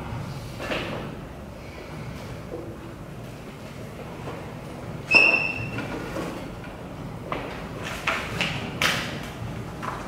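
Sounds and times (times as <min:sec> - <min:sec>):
chair squeal: 0:05.1 - 0:05.9.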